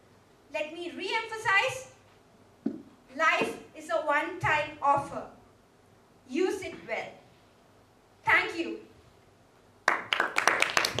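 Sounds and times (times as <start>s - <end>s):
audience applauding: 9.9s - 11.0s.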